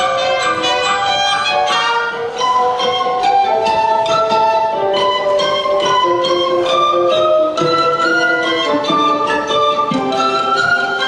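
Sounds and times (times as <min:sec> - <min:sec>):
orchestra strings playing held notes: 0:00.0 - 0:11.0.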